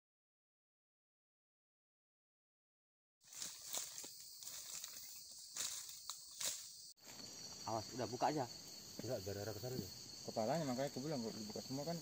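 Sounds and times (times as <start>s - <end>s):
rustling in dry leaf litter: 3.2s - 6.7s
high insect drone: 3.2s - 12.0s.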